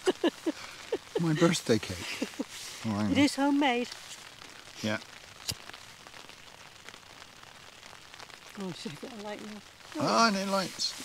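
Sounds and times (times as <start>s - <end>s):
light rain on tent fabric: 0.0s - 11.0s.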